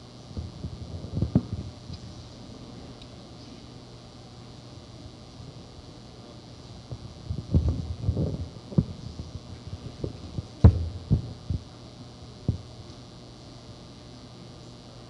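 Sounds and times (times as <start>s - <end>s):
low electrical hum: 0.0s - 15.0s
microphone handling thumps: 0.4s - 2.1s, 6.9s - 11.7s, 12.4s - 12.7s.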